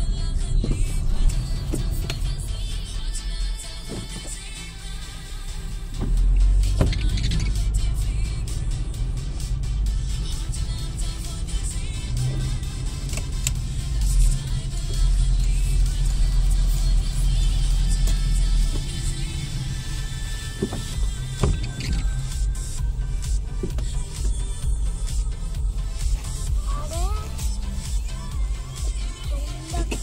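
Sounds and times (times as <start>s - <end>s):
background music: 0.0s - 30.0s
car engine and tyres rumbling: 0.0s - 30.0s.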